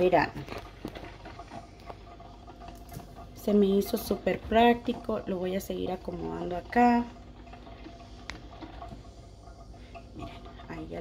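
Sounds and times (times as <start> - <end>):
coffee maker humming: 0.0 - 11.0
water dripping: 0.0 - 11.0.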